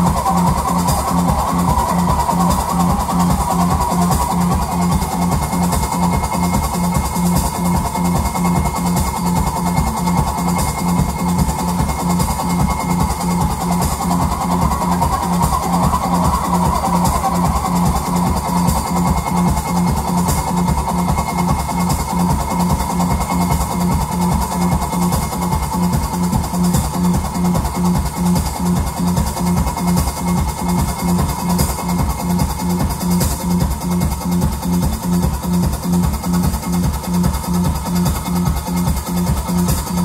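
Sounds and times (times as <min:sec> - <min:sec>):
drum kit: 0:00.0 - 0:40.0.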